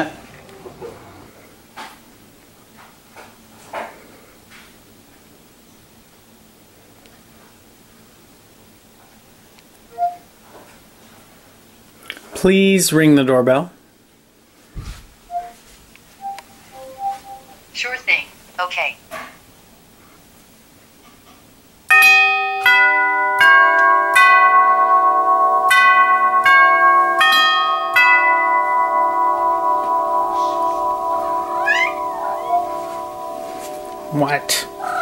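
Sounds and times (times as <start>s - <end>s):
tubular doorbell chime: 16.2s - 17.5s, 21.9s - 35.0s.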